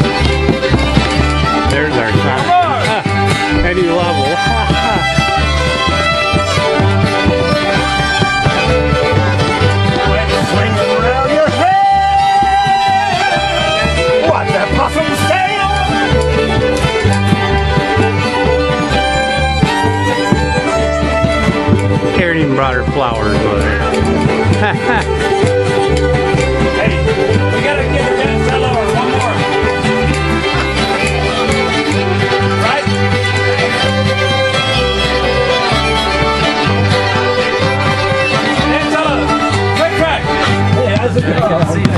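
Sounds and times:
banjo playing: 0:00.0 - 0:41.9
fiddles playing: 0:00.0 - 0:41.9
low bass line: 0:00.0 - 0:41.9
steady low beat: 0:00.0 - 0:41.9
strummed guitar: 0:00.0 - 0:41.9.

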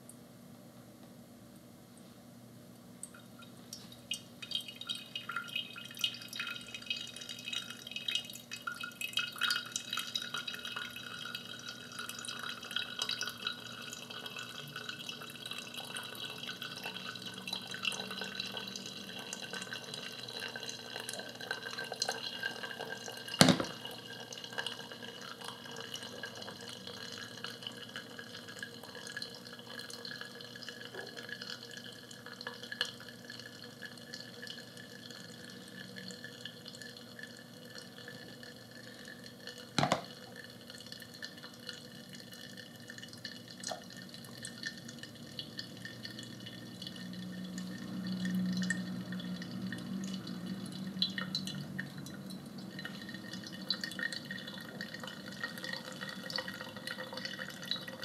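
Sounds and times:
coffee dripping and trickling: 0:03.0 - 0:58.0
hot water pouring onto coffee: 0:03.7 - 0:58.0
sharp knocks: 0:23.4 - 0:23.8.

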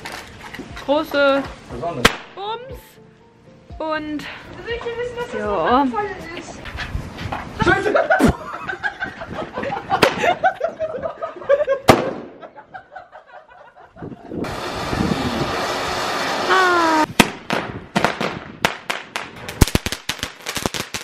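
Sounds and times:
crackling pops: 0:02.0 - 0:02.4
firework bang: 0:11.9 - 0:12.4, 0:14.4 - 0:20.8
firework hissing spray: 0:14.4 - 0:17.3.

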